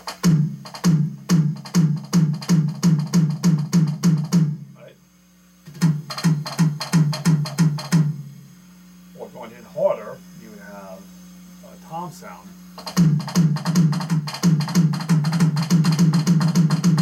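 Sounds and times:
electronic drum pad drags: 0.0s - 4.8s, 5.7s - 8.3s, 12.8s - 17.0s.

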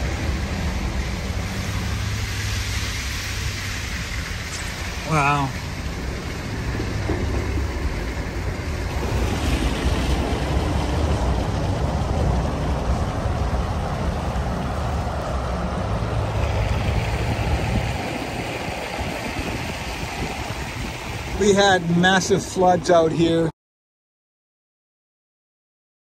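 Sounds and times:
wind buffeting microphone: 5.6s - 22.6s.

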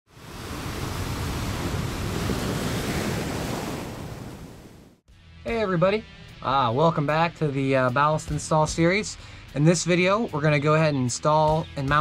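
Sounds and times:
surf-like rushing noise: 0.1s - 5.0s.

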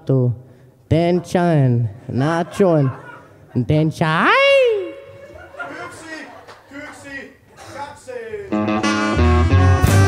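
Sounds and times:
band playing with guitar: 8.5s - 10.0s.

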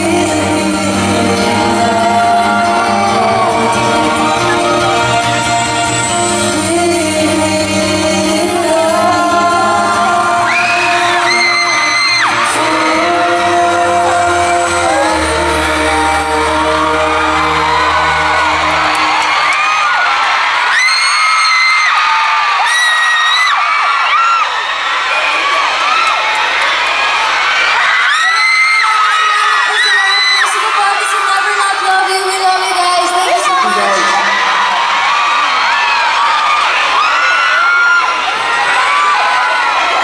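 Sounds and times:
pop duet with band: 0.0s - 19.8s
crowd cheering: 0.0s - 40.0s
high-pitched screams: 10.4s - 12.9s, 27.3s - 31.7s.

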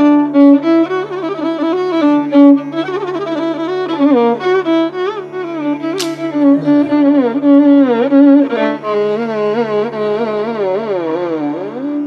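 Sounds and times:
steady drone: 0.0s - 12.0s
violin playing slow melody: 0.0s - 12.0s.

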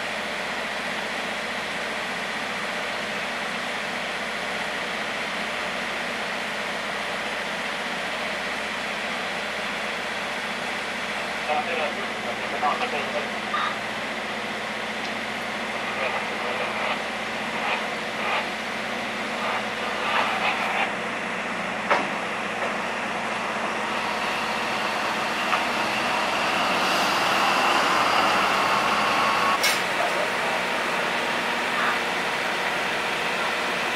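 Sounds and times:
diesel locomotive engine: 0.0s - 33.9s.

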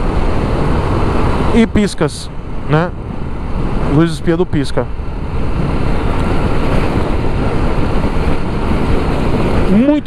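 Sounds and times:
motorcycle engine cruising: 0.0s - 10.0s
wind rush on microphone: 0.0s - 10.0s.

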